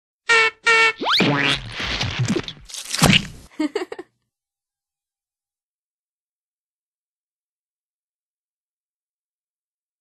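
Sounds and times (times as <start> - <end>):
bulb horn honks: 0.3 - 1.3.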